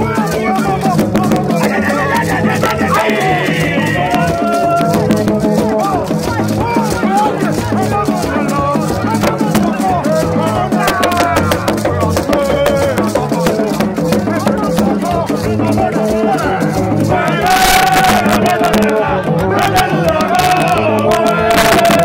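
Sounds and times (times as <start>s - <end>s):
crowd singing a chant: 0.0s - 22.0s
shaken rattles: 0.0s - 22.0s.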